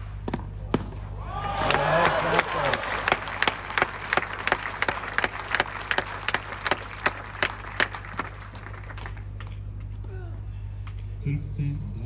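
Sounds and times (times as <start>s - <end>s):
spectators applauding: 1.3s - 10.0s
single person clapping evenly: 1.6s - 9.9s.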